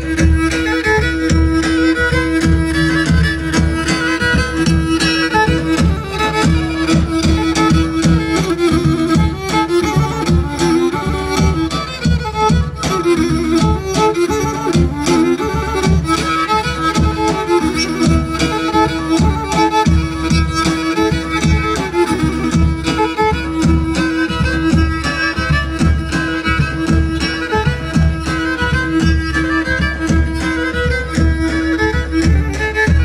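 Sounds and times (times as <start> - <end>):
bowed string melody: 0.0 - 33.0
steady drum beat: 0.0 - 33.0.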